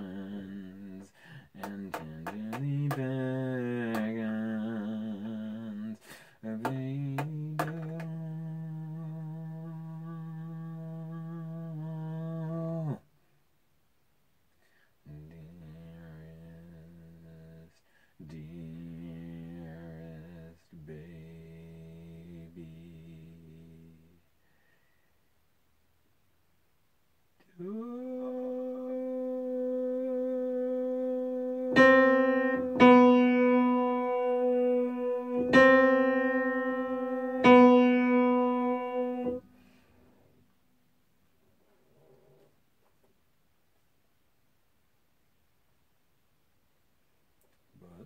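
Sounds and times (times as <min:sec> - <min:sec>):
man singing steady note: 0:00.0 - 0:13.1, 0:15.0 - 0:24.5, 0:27.4 - 0:40.3, 0:47.7 - 0:48.0
man humming held note: 0:27.4 - 0:39.4.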